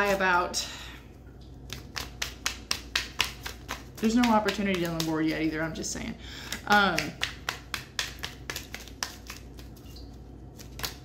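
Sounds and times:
cards being shuffled: 0:01.7 - 0:05.5, 0:07.0 - 0:11.0.

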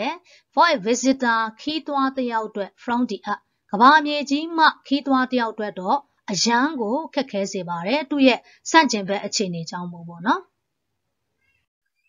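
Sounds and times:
woman speaking: 0:00.0 - 0:10.6.

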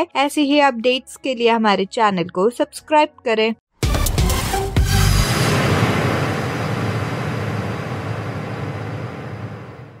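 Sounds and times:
noisy whoosh: 0:04.4 - 0:10.0
low rumble: 0:04.8 - 0:10.0.

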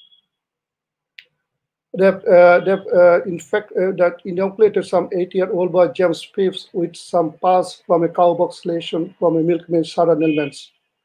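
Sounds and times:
man speaking: 0:02.0 - 0:10.8.

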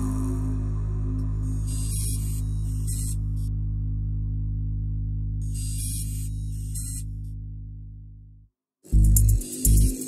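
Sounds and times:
low synthesizer drone: 0:00.0 - 0:10.0.

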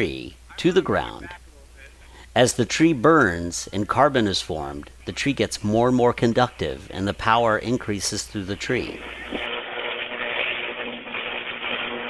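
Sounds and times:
faint electrical hum: 0:00.0 - 0:12.0
electrical arcing hiss: 0:08.7 - 0:12.0.

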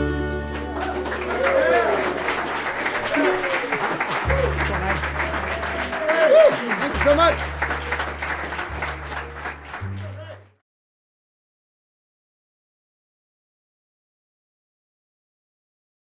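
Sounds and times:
audience applauding: 0:00.0 - 0:10.6
whoops and cheers: 0:00.6 - 0:06.8.

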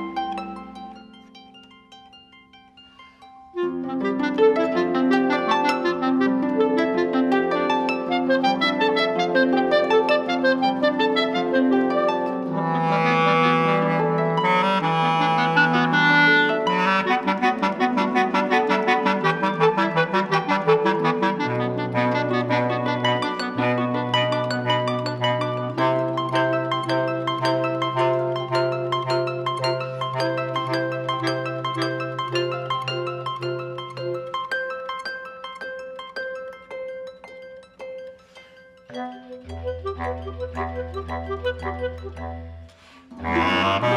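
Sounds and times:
clarinet melody: 0:03.1 - 0:35.4, 0:38.2 - 0:43.9
low bass clarinet notes: 0:03.6 - 0:33.8, 0:38.9 - 0:43.9
plucked harp notes: 0:17.2 - 0:43.9.

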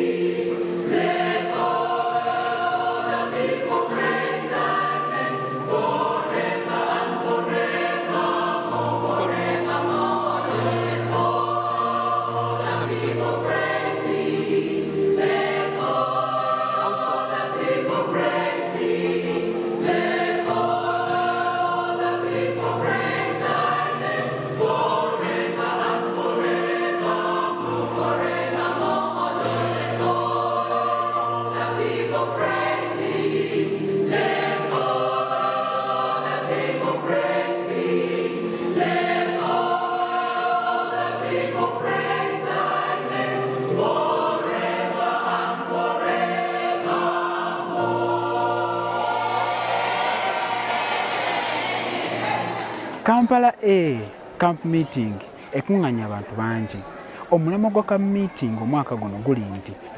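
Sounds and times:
choir singing in harmony: 0:00.0 - 0:59.9.

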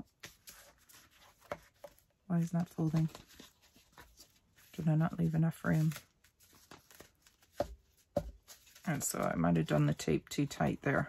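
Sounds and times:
card pages rustling: 0:00.0 - 0:10.0.

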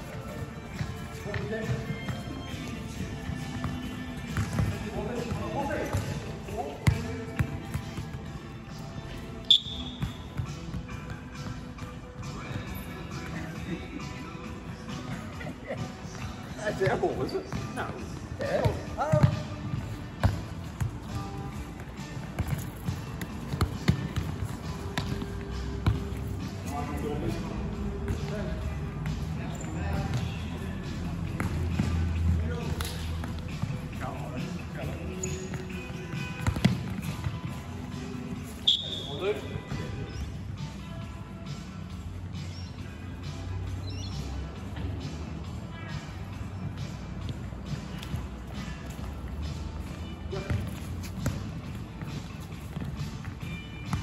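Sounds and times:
background music: 0:00.0 - 0:54.0
referee's whistle blast: 0:09.4 - 0:10.0, 0:38.6 - 0:39.2
sharp high squeak: 0:09.5 - 0:10.1.

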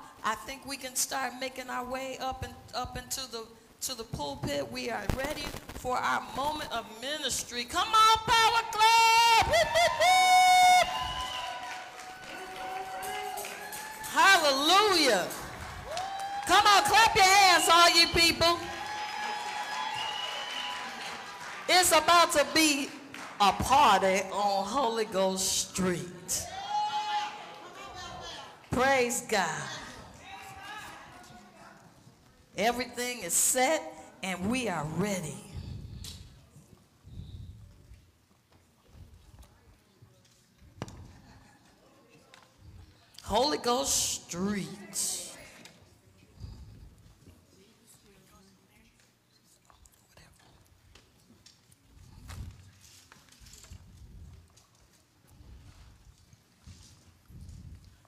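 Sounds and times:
congregation crowd noise: 0:07.3 - 0:32.6, 0:40.4 - 0:47.2
high drawn-out shout: 0:08.6 - 0:14.3, 0:26.4 - 0:28.5.

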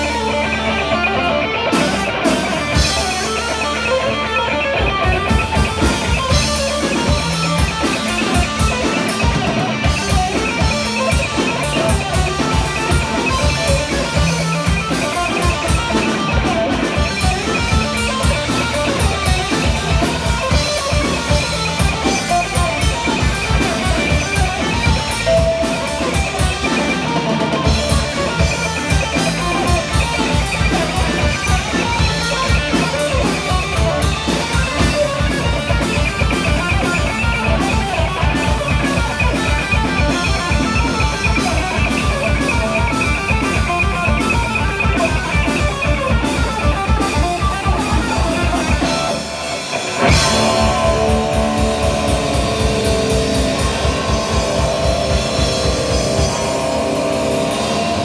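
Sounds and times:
electric bass: 0:00.0 - 0:58.0
electric guitar playing lead: 0:00.0 - 0:58.0
fast drum kit beat: 0:00.0 - 0:58.0.

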